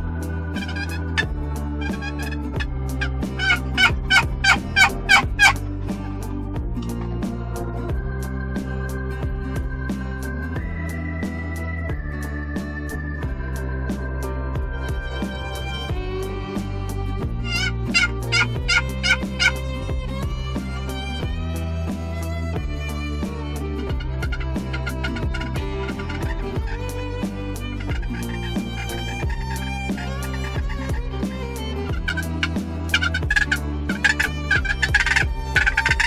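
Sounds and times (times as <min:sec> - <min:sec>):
background music with strings: 0:00.0 - 0:36.0
wild turkey calling: 0:00.6 - 0:02.4, 0:03.0 - 0:05.6, 0:17.5 - 0:19.6, 0:31.9 - 0:36.0.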